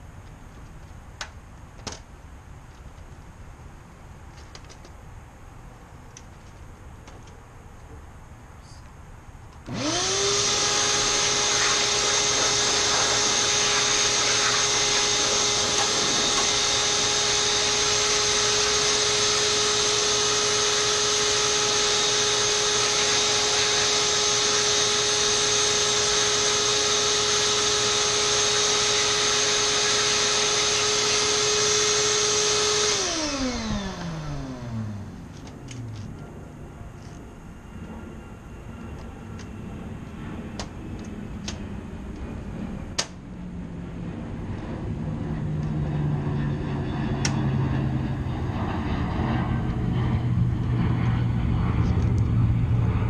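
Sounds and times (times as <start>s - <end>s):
shop vacuum motor whine: 9.6s - 36.2s.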